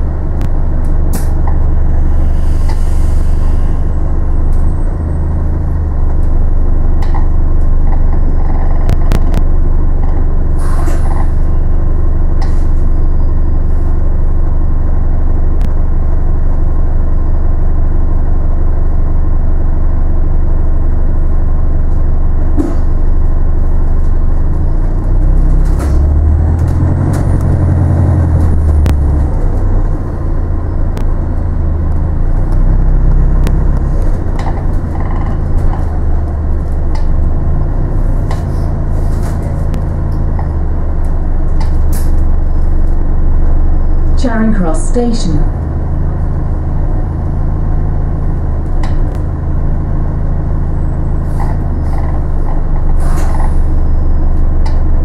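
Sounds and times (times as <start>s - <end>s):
bus engine and road rumble: 0.0s - 55.0s.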